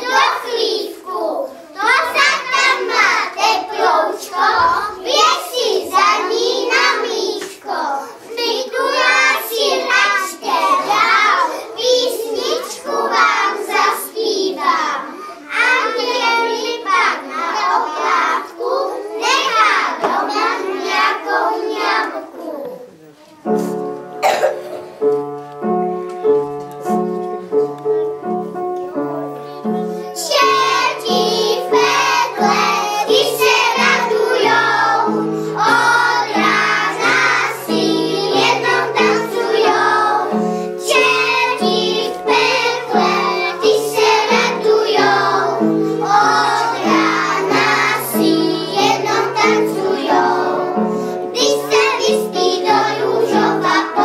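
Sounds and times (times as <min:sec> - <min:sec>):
children singing: 0:00.0 - 0:22.8, 0:30.0 - 0:54.0.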